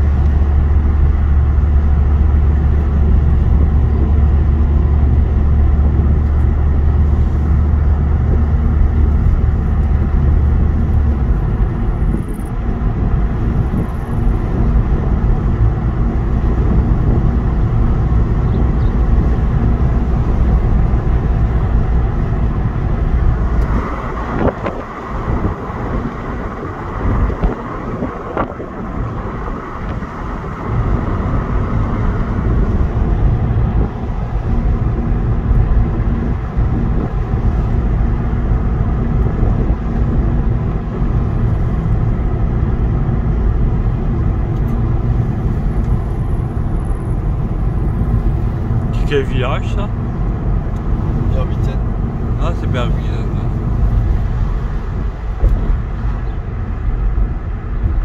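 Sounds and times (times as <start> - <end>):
car engine and tyre rumble: 0.0 - 58.0.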